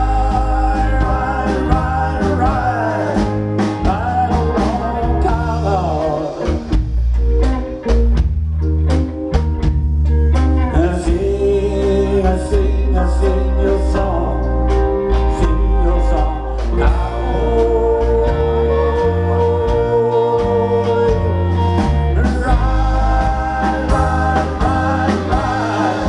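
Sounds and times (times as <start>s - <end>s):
blues-rock band playing: 0.0s - 26.0s
drums: 0.0s - 26.0s.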